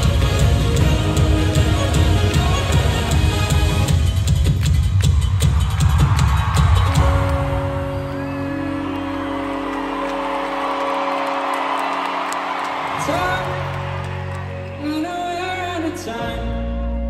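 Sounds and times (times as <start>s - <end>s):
live pop band music: 0.0s - 17.0s
crowd cheering and whooping: 4.6s - 15.7s.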